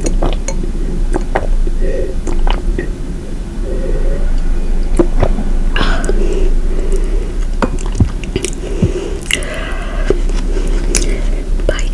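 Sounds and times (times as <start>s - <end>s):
soft low thuds: 0.2s - 10.4s.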